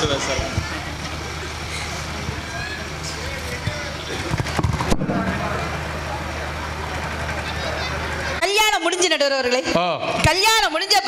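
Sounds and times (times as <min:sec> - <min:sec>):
low even hum: 0:00.0 - 0:08.5
faint indistinct voices: 0:00.0 - 0:08.6.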